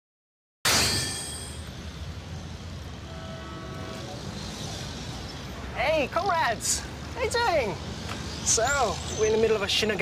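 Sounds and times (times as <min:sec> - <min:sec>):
city traffic hum: 0:00.7 - 0:10.0.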